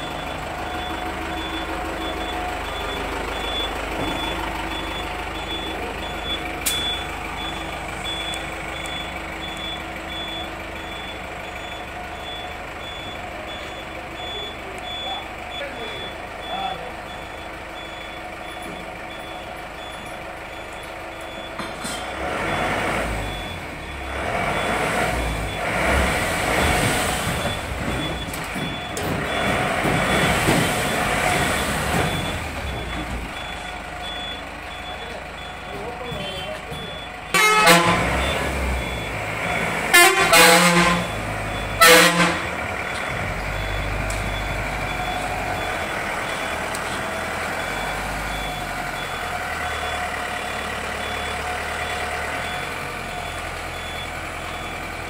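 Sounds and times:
bus engine rumbling: 0.0s - 55.0s
loud horn blast: 37.3s - 38.2s, 39.9s - 41.2s, 41.8s - 42.6s.

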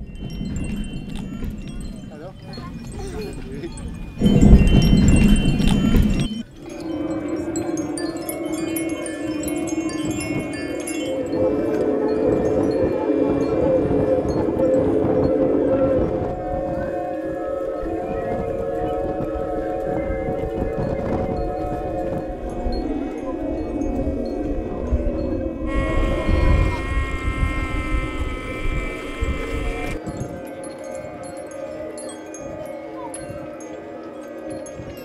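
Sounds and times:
faint high tinkling: 0.0s - 11.8s
wind sounding pipes: 0.0s - 35.0s.

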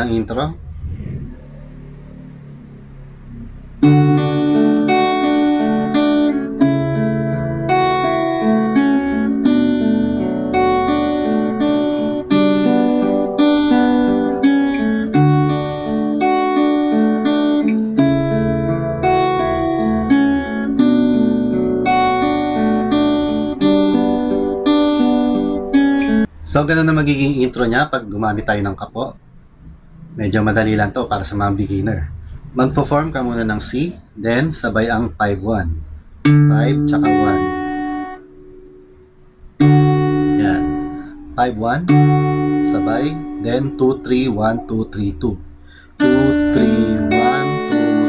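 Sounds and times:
fingerpicked acoustic guitar: 3.8s - 26.3s, 35.8s - 48.0s.

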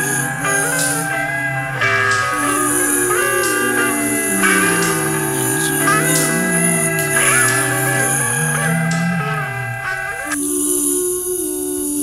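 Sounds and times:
guitar chords ringing: 0.0s - 10.4s.

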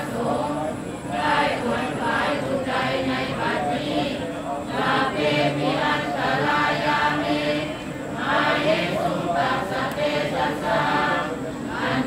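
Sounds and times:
group chanting in unison: 0.0s - 12.0s.

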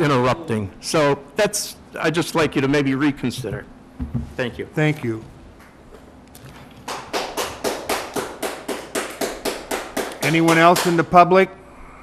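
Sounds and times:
hand clapping: 6.4s - 11.2s.

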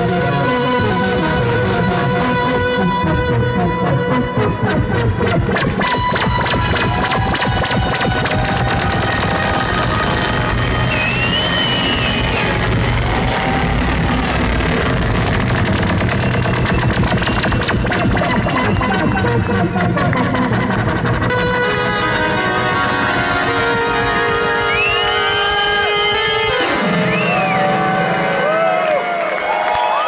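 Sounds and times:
steady low bass: 0.0s - 25.1s
gliding synthesizer tones: 0.0s - 29.0s
electronic dance music: 0.0s - 29.5s
rapid clicking percussion: 5.8s - 21.3s.

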